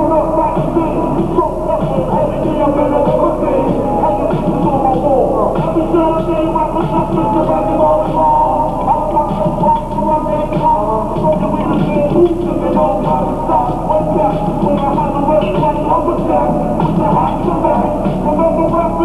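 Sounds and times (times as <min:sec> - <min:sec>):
hip-hop music over a pa: 0:00.0 - 0:19.0
rappers performing into microphones: 0:00.0 - 0:19.0.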